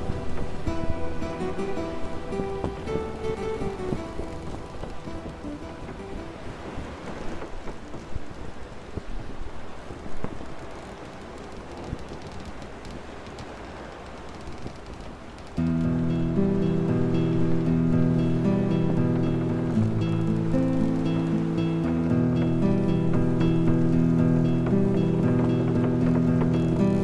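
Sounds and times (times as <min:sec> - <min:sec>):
rain: 0:00.0 - 0:27.0
waves: 0:00.0 - 0:27.0
wind: 0:00.0 - 0:27.0
instrumental pirate-style music: 0:15.6 - 0:27.0.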